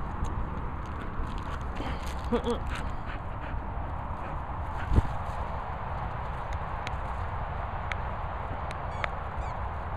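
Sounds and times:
wind rumble on microphone: 0.0s - 9.9s.

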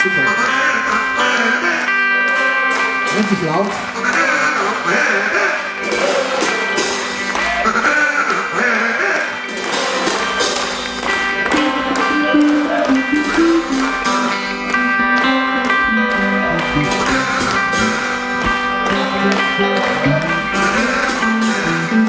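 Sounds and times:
rock band playing loud music: 0.0s - 22.0s.

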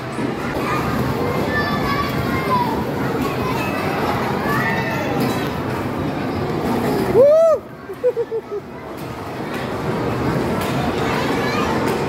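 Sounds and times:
din of children's voices: 0.0s - 12.0s.

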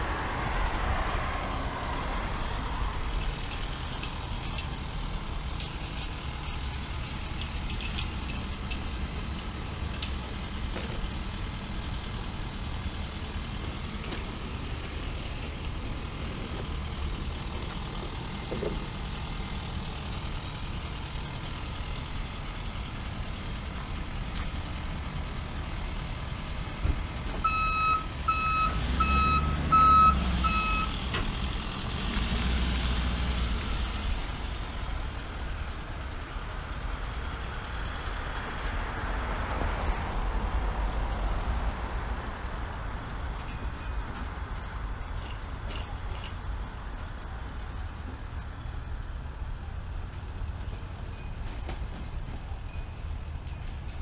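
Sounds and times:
truck engine running: 0.0s - 54.0s
backup alarm beeps: 27.4s - 30.9s.

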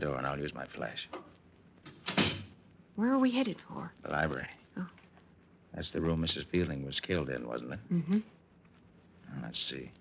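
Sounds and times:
door being shut: 1.9s - 2.5s.

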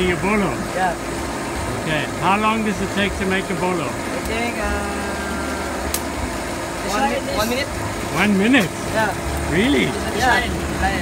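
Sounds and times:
blower motor humming: 0.0s - 11.0s.

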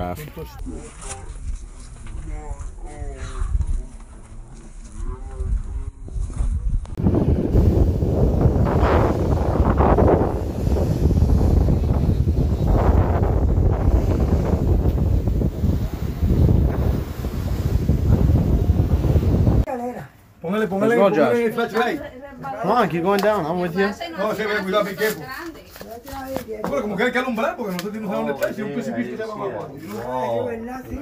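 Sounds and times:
sea surf crashing on rocks: 7.0s - 19.7s.

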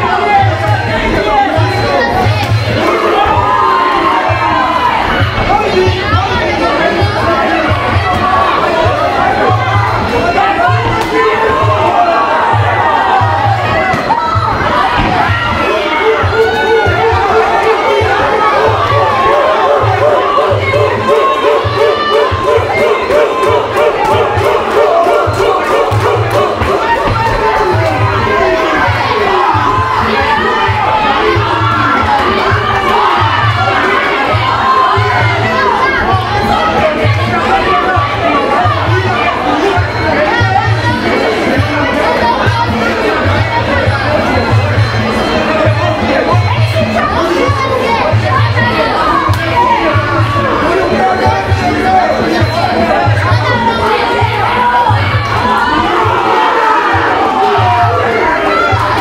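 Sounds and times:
crowd shouting and cheering: 0.0s - 59.0s.

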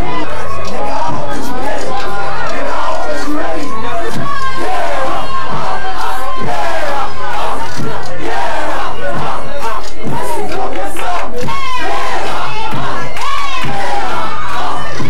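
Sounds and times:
crowd shouting and yelling: 0.0s - 15.0s
performer on a microphone: 0.0s - 15.0s.

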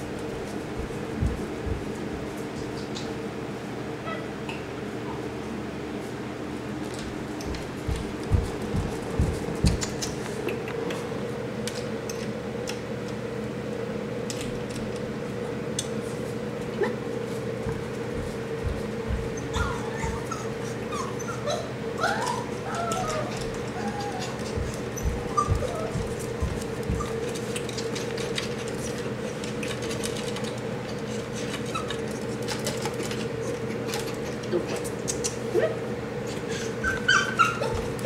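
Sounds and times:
dog whimpering: 4.0s - 4.3s, 19.2s - 27.2s, 35.5s - 38.0s
high-pitched puppy whine: 4.0s - 4.4s, 19.1s - 27.4s, 31.6s - 32.0s, 35.5s - 38.0s.

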